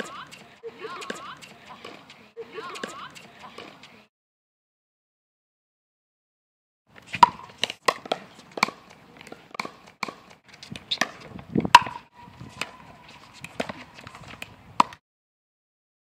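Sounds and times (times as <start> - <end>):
paddles striking ball: 7.2 - 12.8.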